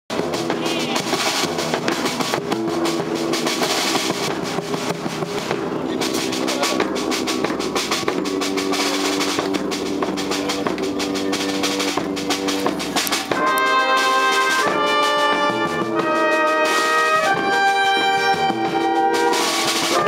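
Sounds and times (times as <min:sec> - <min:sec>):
samba percussion ensemble: 0:00.1 - 0:20.0
held pitched notes: 0:00.4 - 0:20.0.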